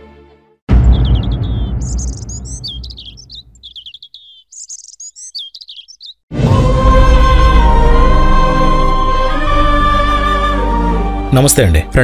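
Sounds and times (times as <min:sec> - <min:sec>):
low rumble: 0:00.7 - 0:03.6
birds chirping and trilling: 0:00.7 - 0:06.3.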